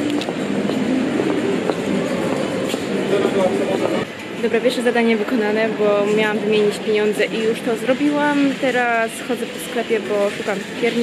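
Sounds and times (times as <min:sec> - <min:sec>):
crowd noise and bustle: 0:00.0 - 0:11.0.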